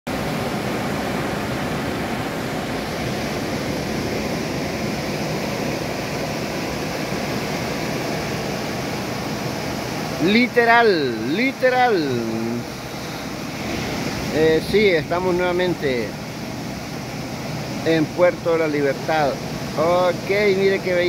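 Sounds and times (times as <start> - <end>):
ocean surf breaking: 0.1 - 21.0.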